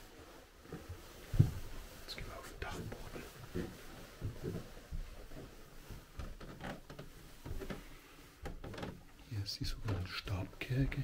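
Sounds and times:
footsteps and shuffles in a room: 0:00.0 - 0:11.0.

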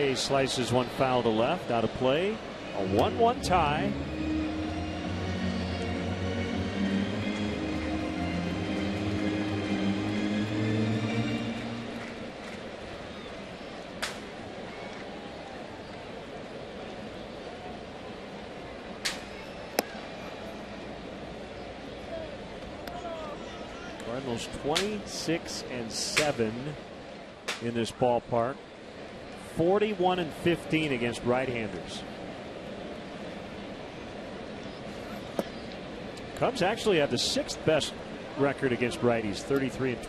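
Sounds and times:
stadium music: 0:00.0 - 0:14.5, 0:20.0 - 0:26.8, 0:29.6 - 0:34.3, 0:36.3 - 0:40.0
crowd murmur: 0:00.0 - 0:25.3, 0:30.3 - 0:40.0.

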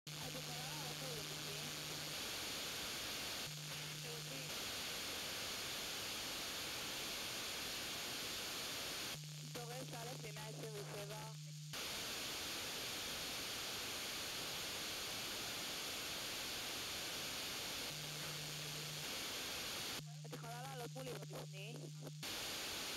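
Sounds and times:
radio hiss: 0:00.1 - 0:22.9.

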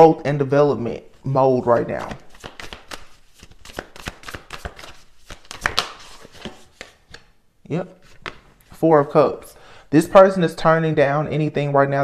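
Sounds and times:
cards shuffling and clicking: 0:01.7 - 0:07.3, 0:08.0 - 0:08.7.

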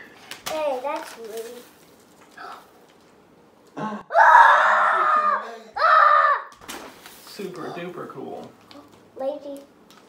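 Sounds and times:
young child screaming: 0:04.1 - 0:06.6.

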